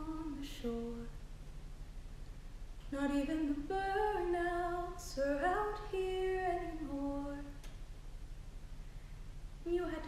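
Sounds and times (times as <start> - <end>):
woman singing unaccompanied: 0.0 - 1.2, 2.9 - 7.7, 9.6 - 10.0.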